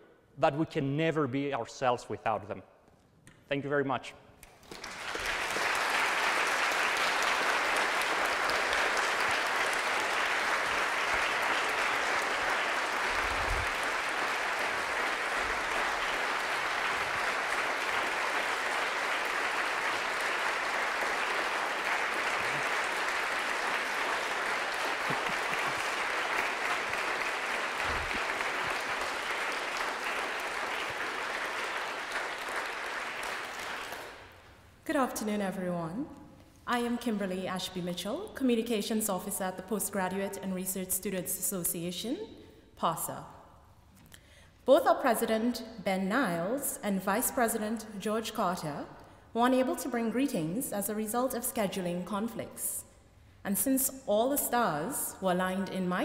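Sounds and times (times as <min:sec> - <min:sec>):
audience applauding: 0:04.6 - 0:34.5.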